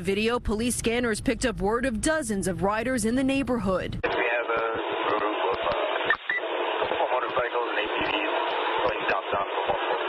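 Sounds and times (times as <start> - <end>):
dispatcher voice over tinny radio: 4.0 - 10.0.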